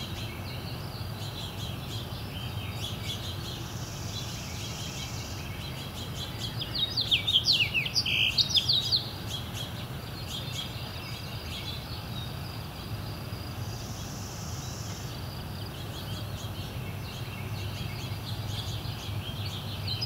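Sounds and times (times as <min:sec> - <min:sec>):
faint birdsong: 0:00.0 - 0:20.0
songbird whistled notes: 0:02.5 - 0:09.6.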